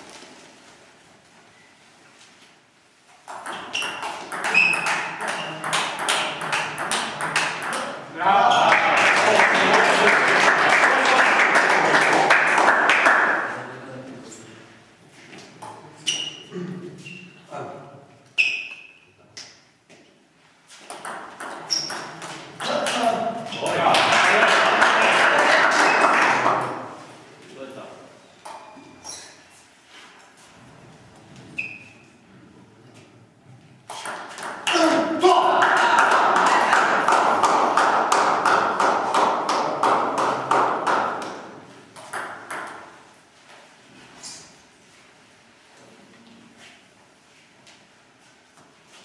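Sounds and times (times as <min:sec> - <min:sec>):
ball bouncing: 0:03.2 - 0:08.0, 0:20.8 - 0:23.0, 0:33.9 - 0:34.7, 0:42.0 - 0:42.9
loud voices in a hall: 0:04.8 - 0:18.2, 0:22.0 - 0:28.2, 0:34.6 - 0:41.8.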